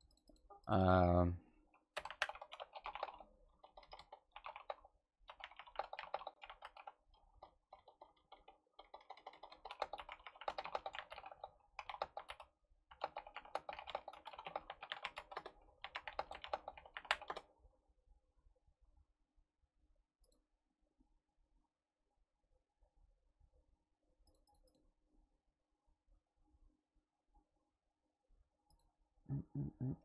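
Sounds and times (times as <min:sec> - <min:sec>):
computer keyboard typing: 0:01.9 - 0:17.5.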